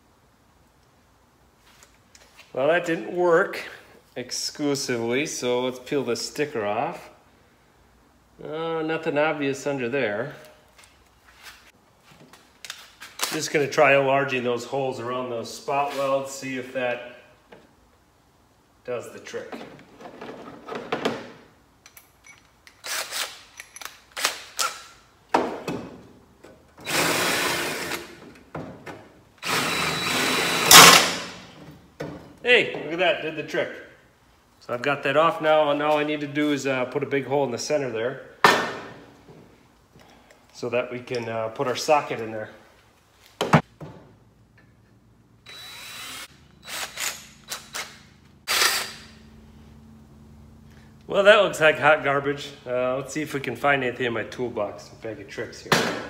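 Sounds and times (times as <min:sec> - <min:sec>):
cordless drill boring metal: 0:26.8 - 0:28.1, 0:29.4 - 0:31.1, 0:45.4 - 0:49.1.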